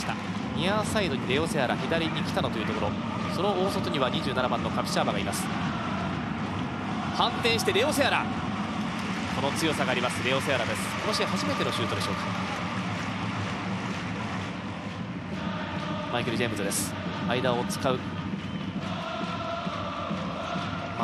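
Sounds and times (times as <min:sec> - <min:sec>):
stadium crowd noise: 0:00.0 - 0:21.0.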